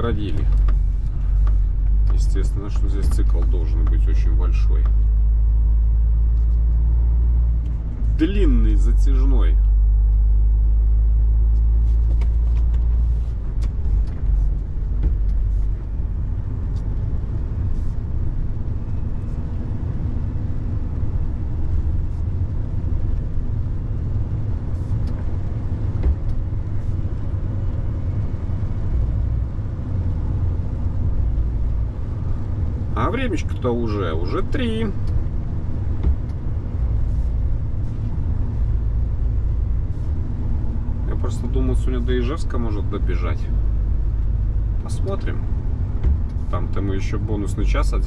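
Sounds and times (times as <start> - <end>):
truck engine and tyre rumble: 0.0 - 48.0.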